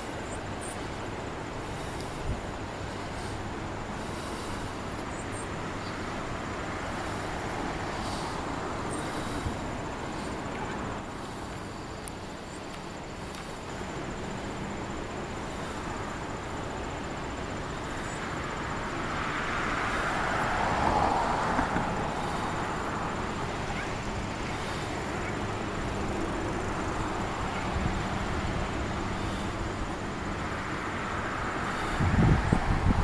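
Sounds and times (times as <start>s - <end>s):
rushing hiss: 0.0s - 33.0s.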